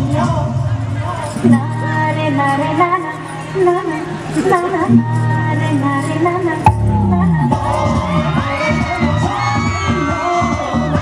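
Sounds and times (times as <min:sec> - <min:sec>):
dance music with steady beat: 0:00.0 - 0:11.0
audience cheering and shouting: 0:07.0 - 0:11.0.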